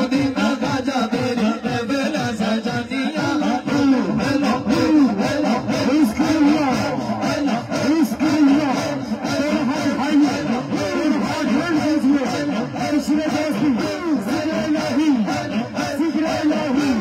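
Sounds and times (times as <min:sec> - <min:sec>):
crowd of men chanting: 0:00.0 - 0:17.0.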